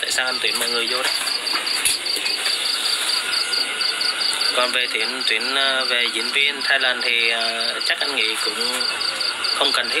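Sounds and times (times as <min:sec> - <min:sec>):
crickets chirping: 0:00.0 - 0:10.0
hiss of night insects: 0:00.1 - 0:10.0.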